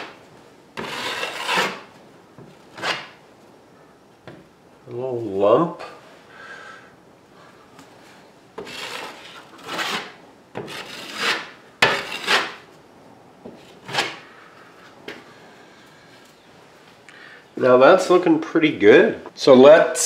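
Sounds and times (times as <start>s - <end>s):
putty knife scraping caulk: 0.8s - 1.9s, 2.8s - 3.2s, 8.6s - 12.6s, 13.8s - 14.2s.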